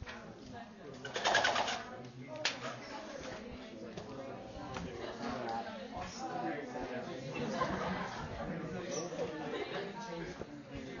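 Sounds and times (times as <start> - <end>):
projector screen rattling: 1.0 - 2.8.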